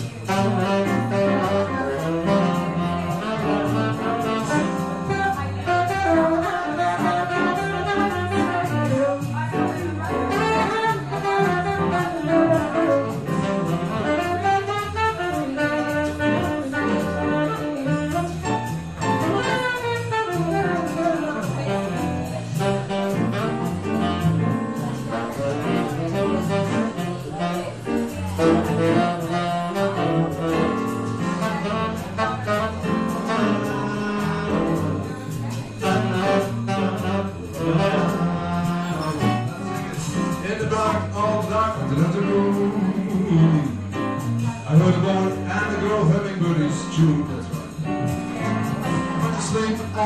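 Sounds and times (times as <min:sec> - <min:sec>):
keyboard accompaniment: 0:00.0 - 0:50.0
saxophone melody: 0:00.0 - 0:50.0.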